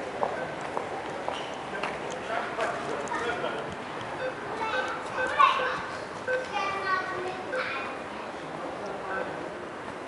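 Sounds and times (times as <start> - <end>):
children calling and chattering: 2.8 - 9.5.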